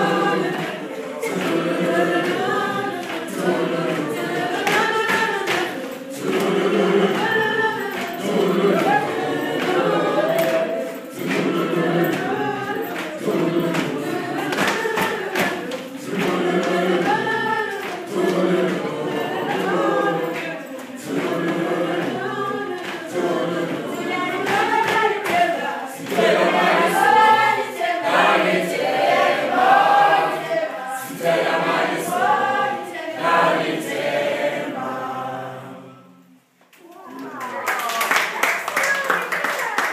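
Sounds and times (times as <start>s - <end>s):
children singing in chorus: 0.0s - 36.2s.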